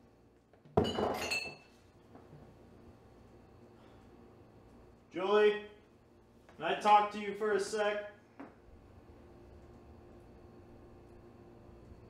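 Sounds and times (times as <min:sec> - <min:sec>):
glass ringing clink: 0:00.8 - 0:01.7.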